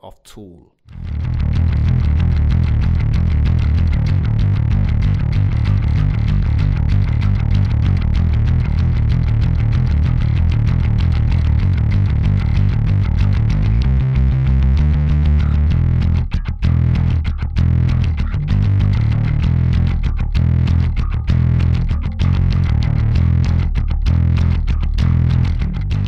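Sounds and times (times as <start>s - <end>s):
distorted electric bass: 0.9s - 26.0s.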